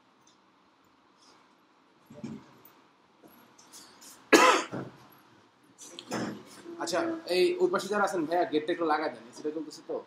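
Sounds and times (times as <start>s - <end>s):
person coughing: 4.3s - 4.8s.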